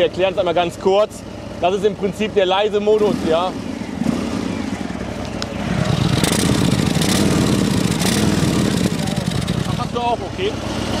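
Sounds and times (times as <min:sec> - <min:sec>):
motorcycle engine blipped: 0:00.0 - 0:11.0.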